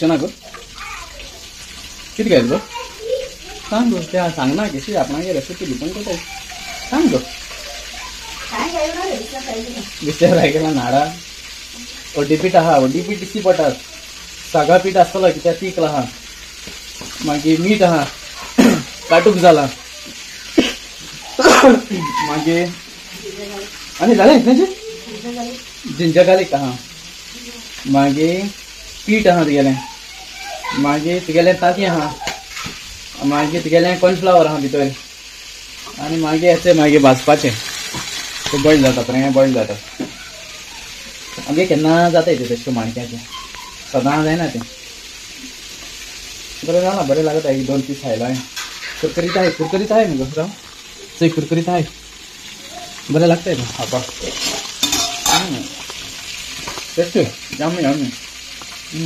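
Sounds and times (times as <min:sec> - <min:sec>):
food sizzling in hot oil: 0:00.0 - 0:59.0
man talking: 0:10.0 - 0:11.2, 0:38.5 - 0:39.8, 0:53.1 - 0:54.4
man speaking: 0:38.5 - 0:39.8.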